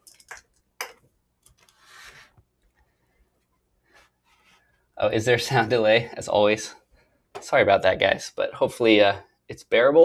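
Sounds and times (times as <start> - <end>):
soft microphone rustle: 1.6 - 4.9.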